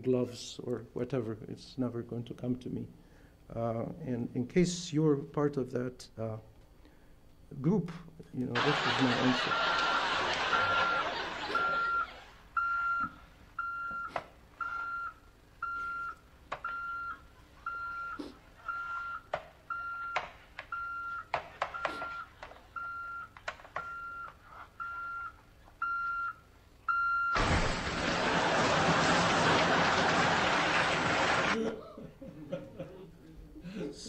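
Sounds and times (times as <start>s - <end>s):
alarm clock beeping: 10.4s - 27.4s.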